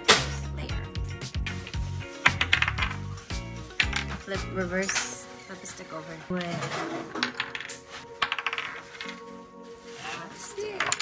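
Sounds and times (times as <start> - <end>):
background music with low bass: 0.0 - 11.0
game pieces clattering on wood: 2.3 - 3.0, 7.0 - 9.2, 10.8 - 11.0.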